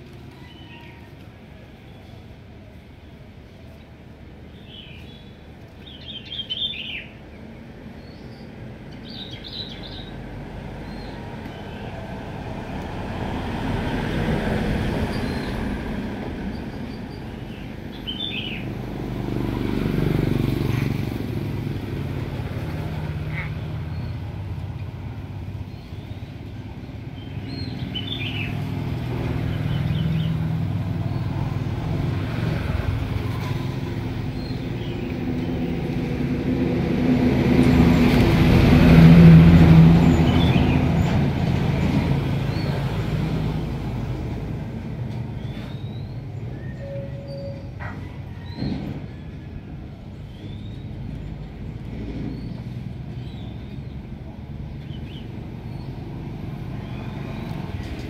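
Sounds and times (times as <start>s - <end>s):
passing motor vehicles rumbling: 0.0s - 58.0s.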